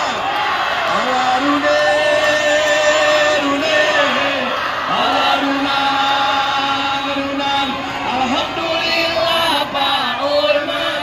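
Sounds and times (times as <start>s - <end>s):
voices chanting one long note: 0.0s - 11.0s.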